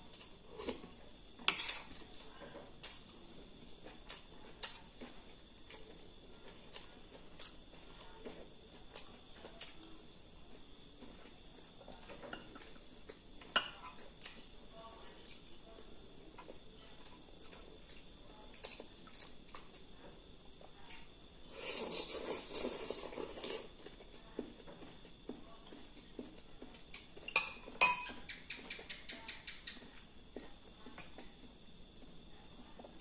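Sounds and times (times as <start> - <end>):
crickets trilling: 0.0 - 33.0
spoon clinking against bowls: 27.3 - 28.4.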